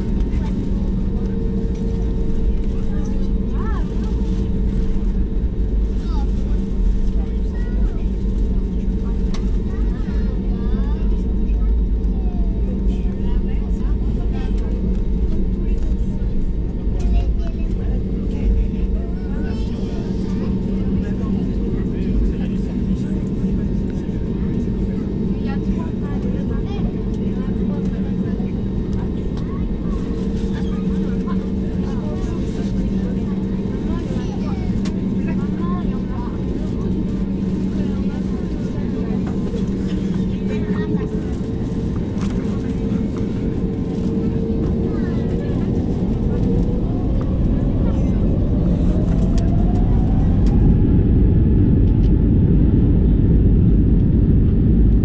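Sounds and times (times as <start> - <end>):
jet engines humming: 0.0 - 55.0.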